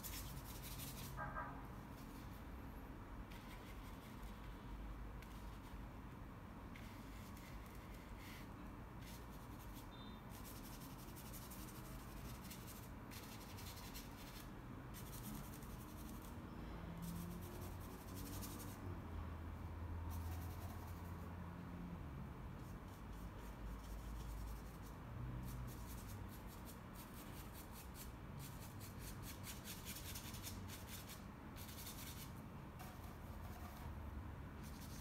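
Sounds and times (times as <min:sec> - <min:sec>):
paintbrush scratching on canvas: 0:00.0 - 0:02.5, 0:03.3 - 0:05.9, 0:06.7 - 0:16.4, 0:17.0 - 0:18.8, 0:20.1 - 0:21.4, 0:22.6 - 0:35.0.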